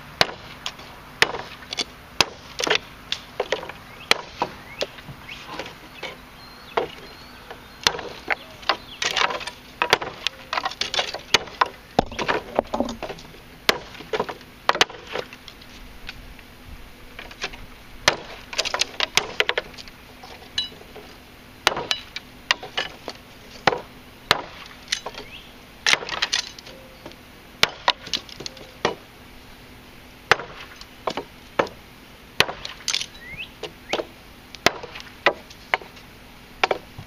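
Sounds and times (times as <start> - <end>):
knife chopping dry sticks: 7.8 - 15.3.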